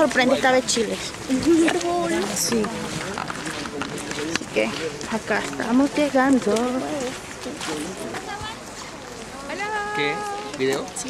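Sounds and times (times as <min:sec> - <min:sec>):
footsteps on gravel: 0:00.0 - 0:11.0
group talking: 0:00.0 - 0:11.0.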